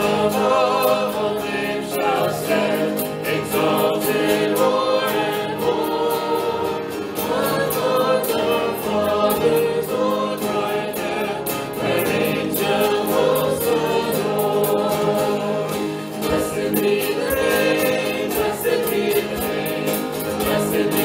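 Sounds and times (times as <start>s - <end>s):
acoustic guitar: 0.0s - 21.0s
people singing a hymn: 0.0s - 21.0s.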